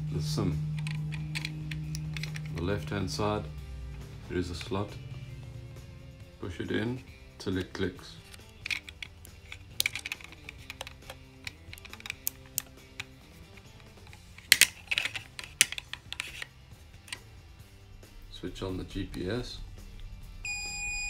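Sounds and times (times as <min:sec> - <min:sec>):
hard plastic clicks and snaps: 0:00.7 - 0:02.6, 0:07.6 - 0:17.3.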